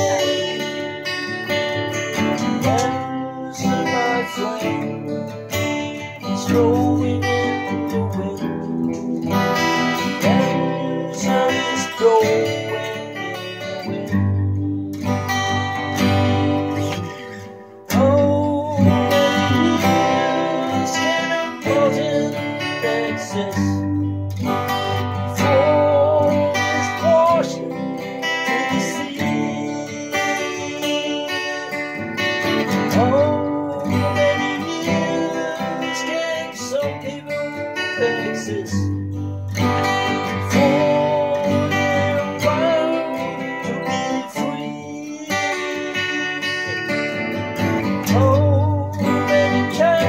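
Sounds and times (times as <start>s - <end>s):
acoustic guitar strummed: 0.0s - 50.0s.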